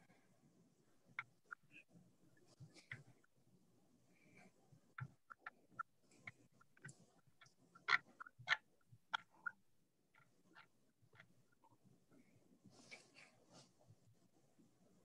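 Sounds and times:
faint clicks and taps: 0:01.1 - 0:03.4, 0:04.2 - 0:15.0.

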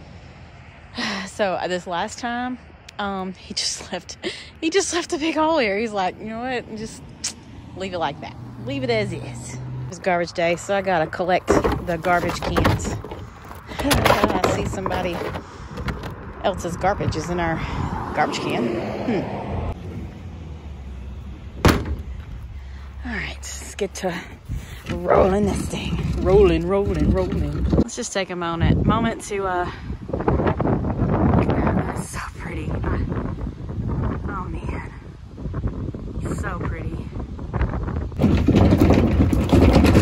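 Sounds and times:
garbage can wheels on gravel: 0:10.0 - 0:16.9, 0:21.0 - 0:28.0, 0:38.2 - 0:40.0
garbage cart lid slamming shut: 0:21.6 - 0:22.0.

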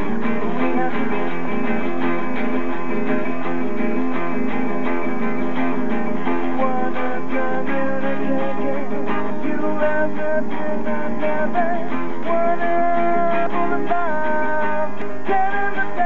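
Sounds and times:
guitar strummed and plucked: 0:00.0 - 0:16.0.

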